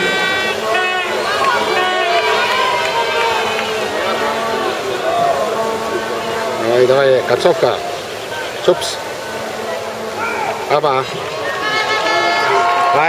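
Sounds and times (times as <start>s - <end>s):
spectators shouting and cheering: 0.0s - 13.0s.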